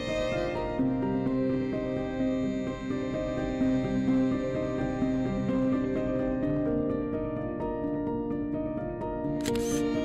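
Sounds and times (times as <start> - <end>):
slow sustained background music: 0.0 - 10.0
camera shutter: 9.4 - 10.0.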